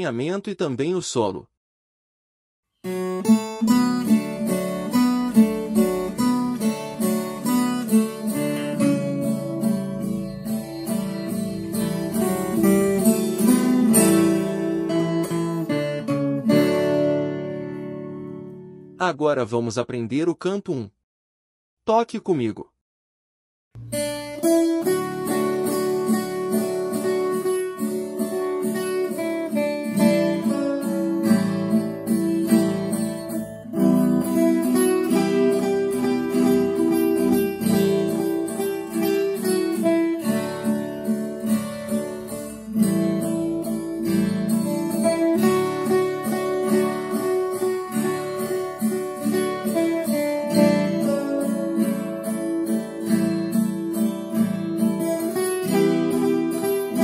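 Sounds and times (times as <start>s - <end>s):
strummed guitar-like accompaniment: 2.8s - 19.0s, 23.8s - 57.0s
plucked single-note melody: 2.9s - 18.9s, 23.8s - 57.0s.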